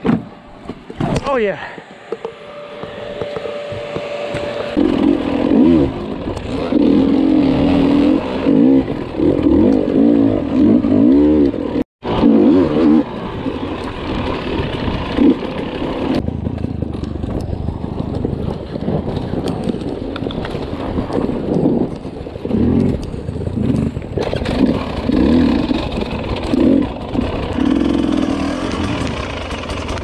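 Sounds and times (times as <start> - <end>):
dirt bike engine revving: 2.5 - 16.2, 23.6 - 30.0.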